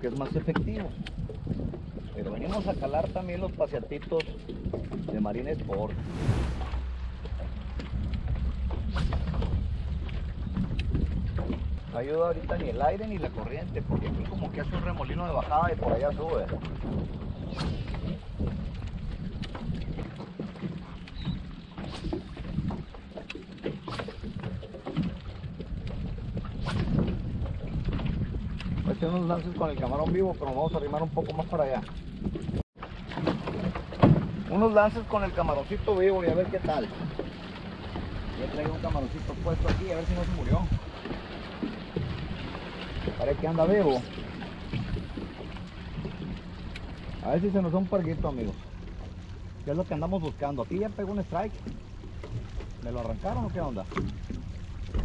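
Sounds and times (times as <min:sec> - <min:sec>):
water lapping against kayak hull: 0:00.0 - 0:55.0
wind rumbling on microphone: 0:00.0 - 0:55.0
small splashes and knocks: 0:06.8 - 0:38.8, 0:40.8 - 0:55.0.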